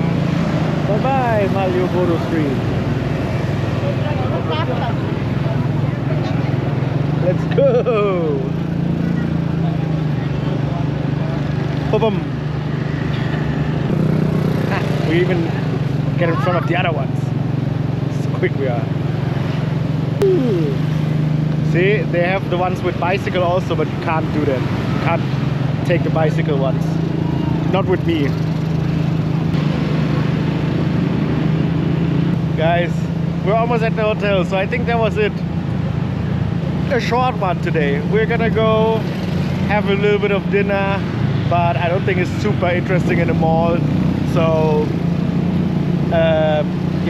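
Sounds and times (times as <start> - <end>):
small motorcycle engine running: 0.0 - 32.3
road noise: 0.0 - 47.0
street traffic: 0.0 - 47.0.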